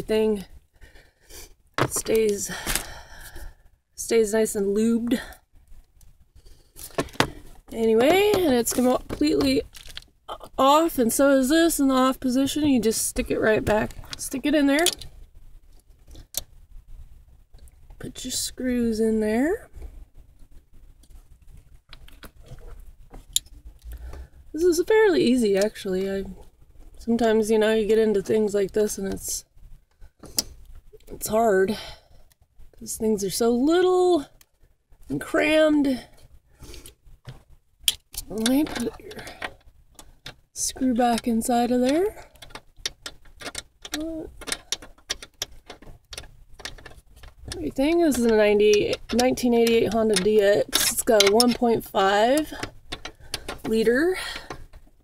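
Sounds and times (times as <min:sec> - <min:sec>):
screw and tool clicking: 0:41.9 - 0:53.8.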